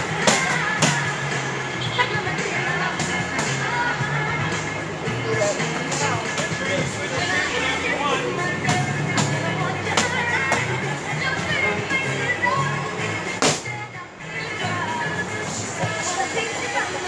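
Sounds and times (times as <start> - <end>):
background music with steady beat: 0.0 - 17.0.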